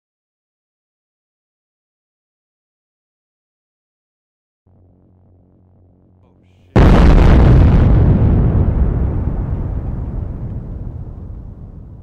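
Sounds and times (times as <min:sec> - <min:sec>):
explosion blast rumbling: 0:06.7 - 0:12.0.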